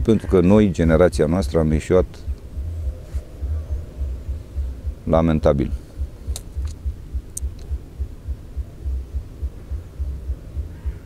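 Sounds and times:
wind buffeting a microphone: 0.0 - 11.0.

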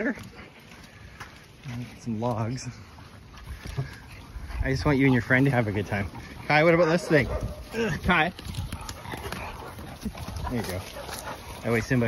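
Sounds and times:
footsteps through marsh grass: 0.0 - 12.0
man talking: 1.6 - 2.9, 4.5 - 8.4, 10.4 - 12.0.

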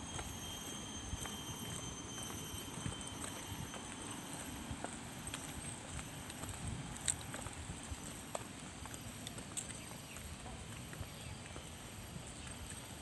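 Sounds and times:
faint high whine: 0.0 - 13.0
footsteps on stone paving: 0.0 - 13.0.

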